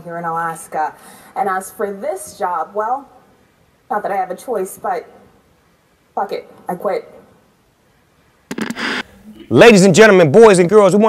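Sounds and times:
crackle of sharp clicks: 8.5s - 9.1s.

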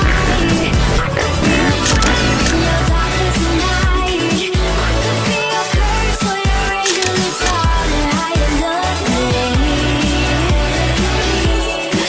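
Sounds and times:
pop song: 0.0s - 12.0s.

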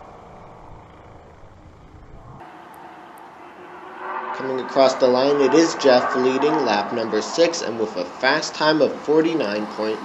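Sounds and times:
low rumble: 0.0s - 8.8s
distant go-kart engines: 0.0s - 10.0s.

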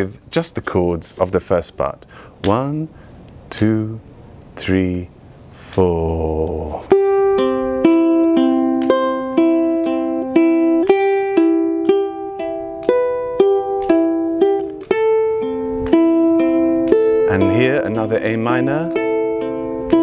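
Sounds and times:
person speaking: 0.0s - 7.2s, 17.2s - 19.2s
ukulele fingerpicking: 6.8s - 20.0s.

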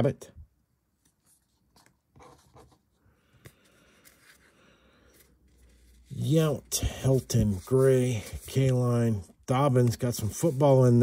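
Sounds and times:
trading cards rustling: 1.0s - 11.0s.

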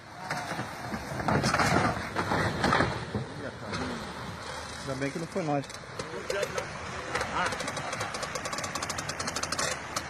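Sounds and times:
rushing water: 0.0s - 10.0s.

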